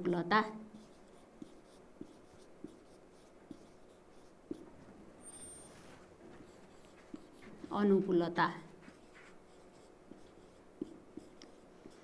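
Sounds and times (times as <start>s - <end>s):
marker writing on whiteboard: 0.0s - 12.0s
marker tip tapping board: 4.5s - 4.7s, 10.1s - 12.0s.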